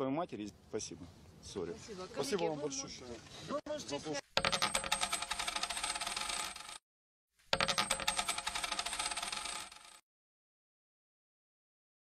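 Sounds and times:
coins pouring and clinking: 4.4 - 6.8, 7.6 - 10.0.

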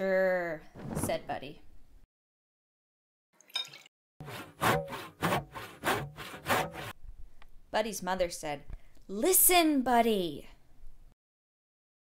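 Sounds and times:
saw cutting through wood: 4.2 - 7.0.

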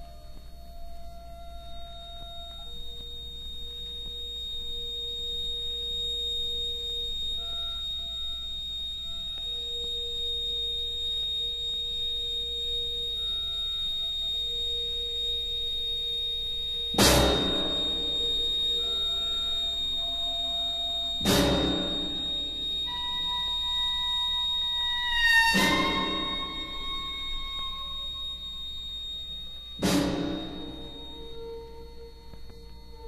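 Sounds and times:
low hum: 0.0 - 33.0
steady high whine: 0.0 - 33.0.

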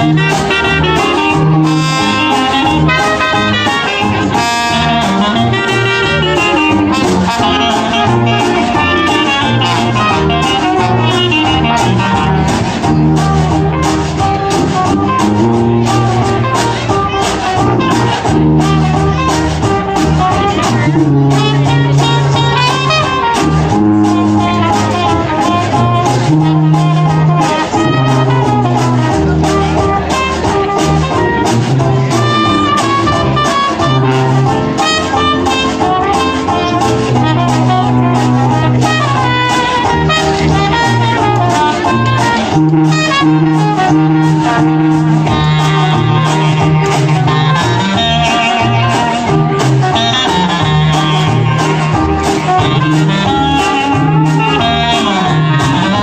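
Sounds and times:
clarinet: 0.0 - 56.0
jazz band playing: 0.0 - 56.0
sousaphone bass line: 0.0 - 56.0
strummed guitar: 0.0 - 56.0
trombone: 0.0 - 56.0
trumpet: 0.0 - 56.0.

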